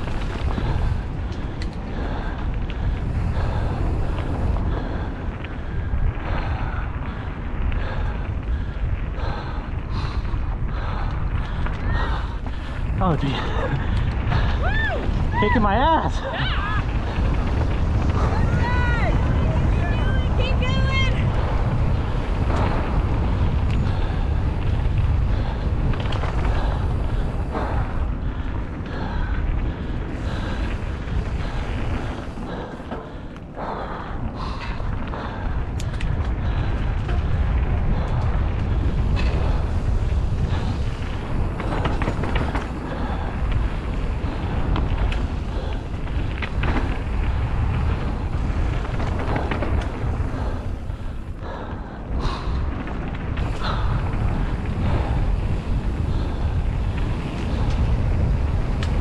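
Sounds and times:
tyres rolling over dirt: 0.0 - 59.0
wind buffeting microphone: 0.0 - 59.0
bike knocks and rattles: 34.6 - 51.3.

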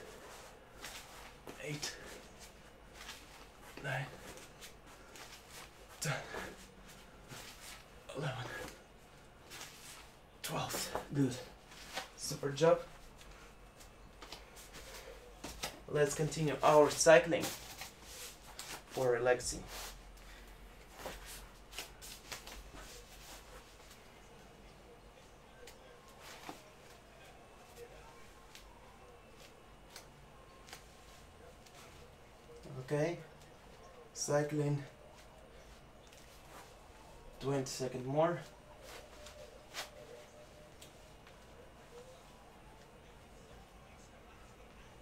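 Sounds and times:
faint rustles of movement: 0.0 - 34.1, 34.8 - 45.0.

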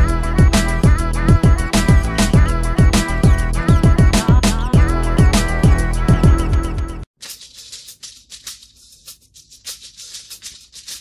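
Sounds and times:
shaker rhythm: 0.0 - 11.0.

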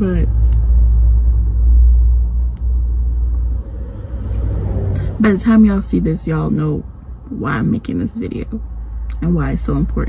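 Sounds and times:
low rumble inside car cabin: 0.0 - 10.0.

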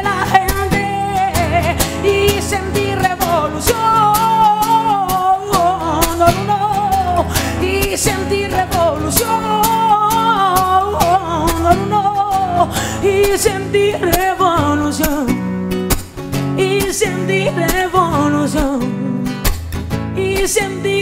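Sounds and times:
strummed acoustic guitar: 0.0 - 21.0
woman singing: 0.0 - 21.0.

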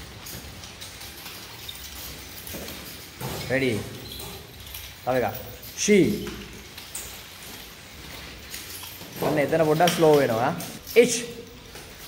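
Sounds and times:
wooden nunchaku rattling and swishing: 0.0 - 12.0.

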